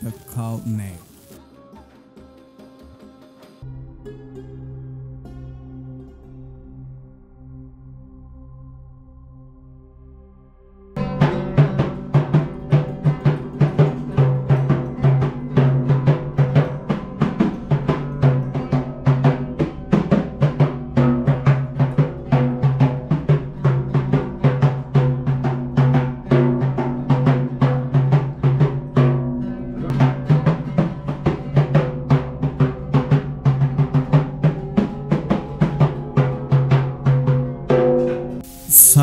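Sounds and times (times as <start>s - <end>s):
hand-struck frame drum: 11.0s - 29.3s, 29.9s - 38.2s
oud playing: 11.0s - 38.4s.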